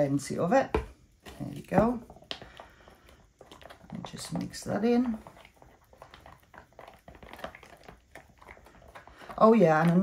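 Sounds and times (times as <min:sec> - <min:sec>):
stick scraping plastic tub: 0:00.2 - 0:10.0.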